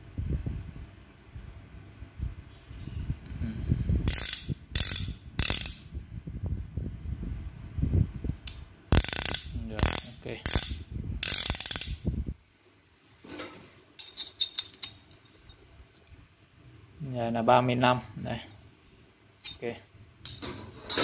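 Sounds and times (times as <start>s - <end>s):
ratchet wrench clicking: 4.0s - 5.9s, 8.5s - 12.1s.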